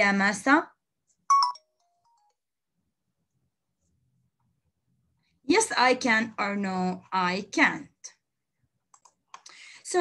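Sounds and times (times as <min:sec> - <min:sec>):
electronic chime: 0:01.3 - 0:01.7.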